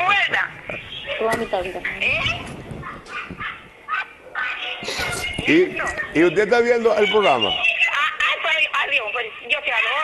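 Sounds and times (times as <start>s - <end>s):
indistinct talking: 0.0s - 10.0s
woman's voice over a telephone: 7.6s - 10.0s.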